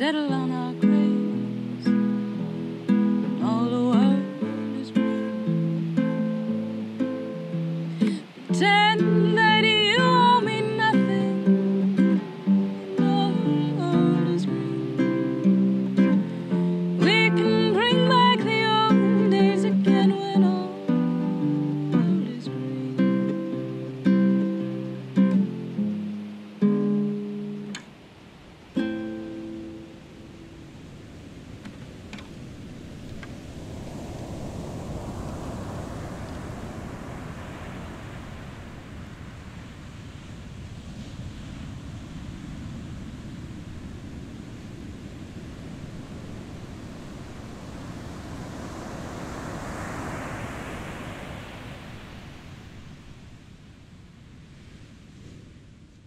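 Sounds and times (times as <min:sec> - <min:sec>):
ocean surf on rocky shore: 0:00.0 - 0:56.0.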